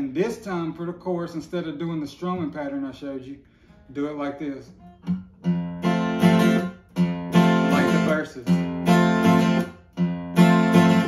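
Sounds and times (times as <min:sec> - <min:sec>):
person speaking: 0:00.0 - 0:04.9, 0:07.4 - 0:08.7
acoustic guitar strumming: 0:00.1 - 0:11.0.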